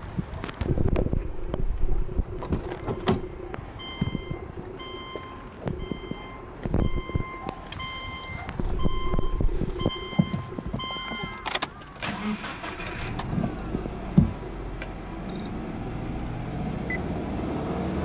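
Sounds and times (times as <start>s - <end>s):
dashboard warning chime beeping: 2.8s - 11.6s.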